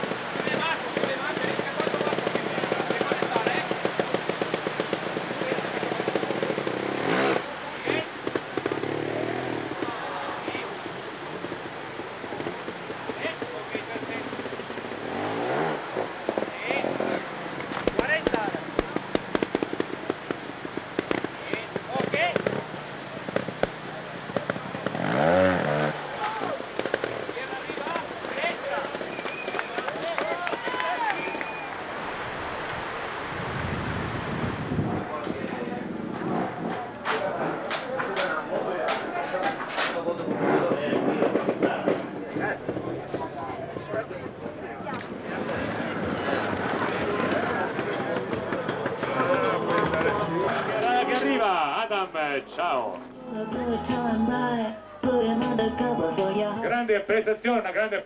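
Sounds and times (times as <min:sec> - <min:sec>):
motorcycle engine revving: 0:00.0 - 0:31.4, 0:34.8 - 0:51.2
rushing water: 0:00.0 - 0:40.0
spectators shouting: 0:25.0 - 0:31.9.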